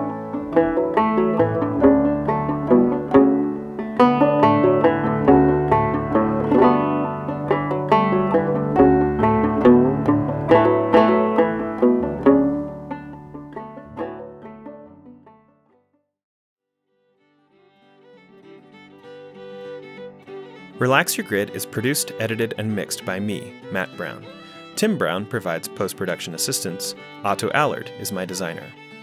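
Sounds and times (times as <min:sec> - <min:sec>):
banjo tune: 0:00.0 - 0:15.9, 0:17.9 - 0:29.0
quiet music with held notes: 0:00.0 - 0:16.0, 0:16.6 - 0:29.0.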